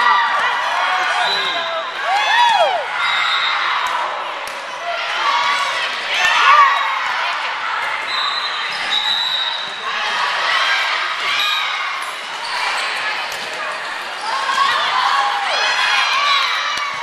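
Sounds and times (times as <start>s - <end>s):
girls calling out in echoing gym: 0.0s - 8.8s, 9.7s - 17.0s.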